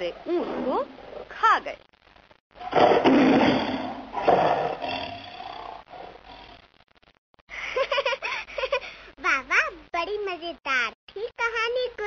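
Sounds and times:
lion roaring: 0:02.6 - 0:06.6
child's voice: 0:09.2 - 0:12.0.

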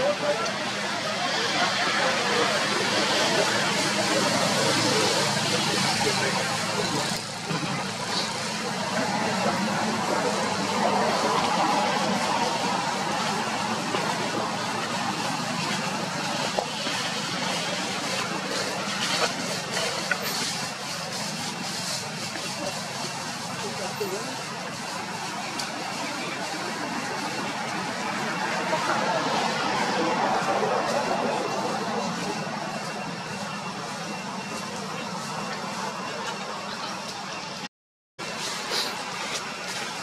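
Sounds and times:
indistinct human voices: 0:00.0 - 0:37.6
motor vehicle traffic: 0:00.0 - 0:40.0.

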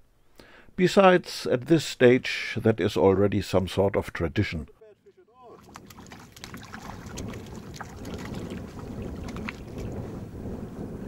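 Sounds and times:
small waves lapping: 0:05.4 - 0:10.2
wind buffeting microphone: 0:05.6 - 0:11.0.

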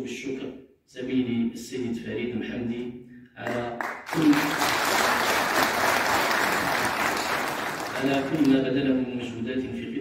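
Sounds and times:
audience applauding: 0:03.5 - 0:08.6.

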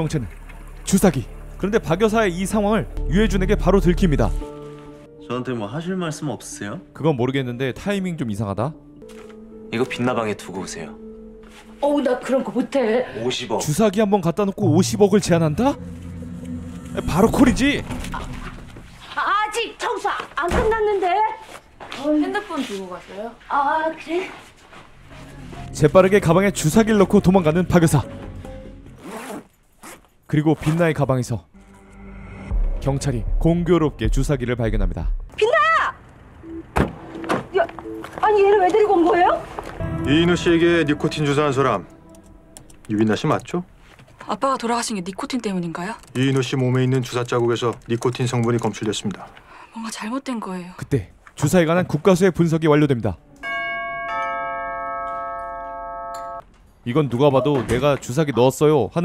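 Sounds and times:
faint background music: 0:00.0 - 0:31.5, 0:32.6 - 0:53.4
zipper on fabric bag: 0:29.0 - 0:30.1.

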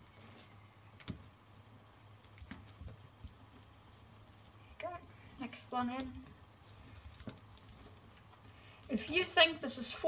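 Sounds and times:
flax strips rustling: 0:00.0 - 0:10.0.

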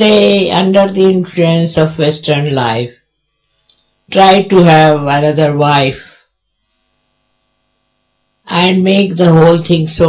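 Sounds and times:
woman's voice: 0:00.0 - 0:03.0, 0:04.1 - 0:06.2, 0:08.5 - 0:10.0
faint electrical hum: 0:00.0 - 0:10.0.

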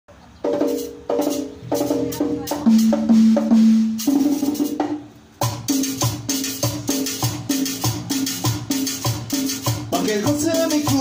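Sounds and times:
live band playing: 0:00.2 - 0:11.0
pitched drum hits: 0:00.5 - 0:11.0.

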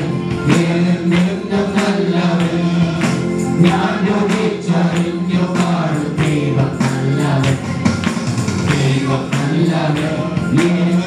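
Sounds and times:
electronic keyboard: 0:00.0 - 0:11.0
men singing a worship song: 0:00.0 - 0:11.0
steady percussive beat: 0:00.0 - 0:11.0.

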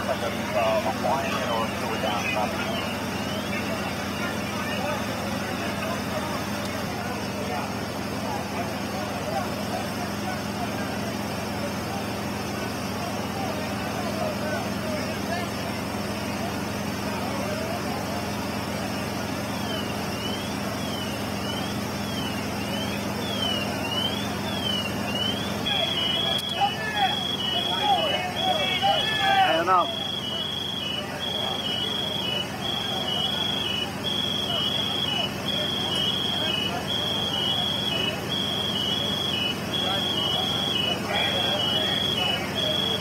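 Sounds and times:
siren wailing: 0:00.0 - 0:05.8, 0:19.5 - 0:43.0
crew voices calling out: 0:00.0 - 0:43.0
fire engines running: 0:00.0 - 0:43.0.

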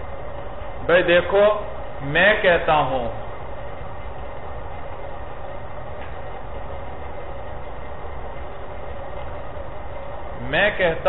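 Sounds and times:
faint constant hum: 0:00.0 - 0:11.0.

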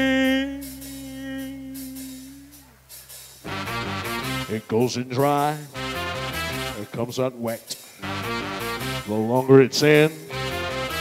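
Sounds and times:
man singing held note: 0:00.0 - 0:02.7, 0:04.4 - 0:05.8, 0:06.7 - 0:07.8, 0:09.0 - 0:10.4
backing track chord: 0:03.4 - 0:07.0, 0:08.0 - 0:09.7, 0:10.3 - 0:11.0.

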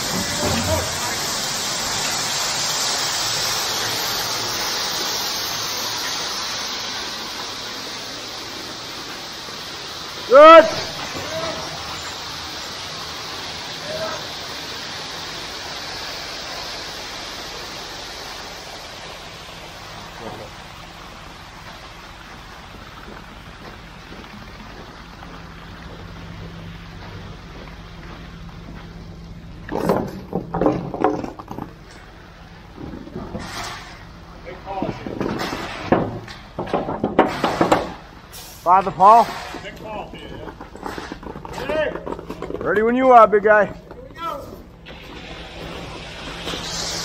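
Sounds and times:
voices: 0:00.0 - 0:01.4, 0:10.2 - 0:12.3, 0:13.6 - 0:14.6, 0:34.4 - 0:35.9, 0:38.6 - 0:40.7, 0:41.4 - 0:46.3
truck engine humming: 0:00.0 - 0:47.0
wet concrete sliding down chute: 0:00.0 - 0:47.0.

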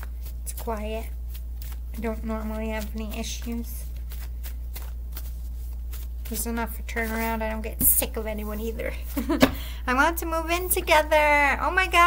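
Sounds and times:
cards being shuffled: 0:00.0 - 0:09.6
steady low hum: 0:00.0 - 0:12.0.

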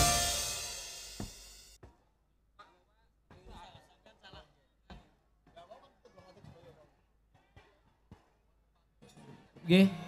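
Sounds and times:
band chord ringing out: 0:00.0 - 0:01.6
drum and cymbal hit: 0:00.0 - 0:01.8.

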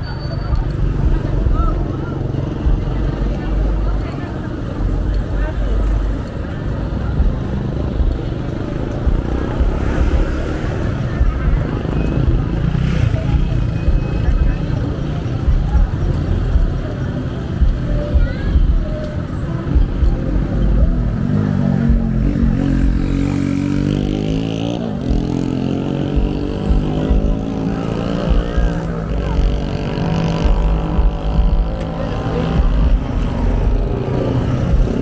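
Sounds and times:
motorcycles passing: 0:00.0 - 0:35.0
people talking: 0:00.0 - 0:35.0.

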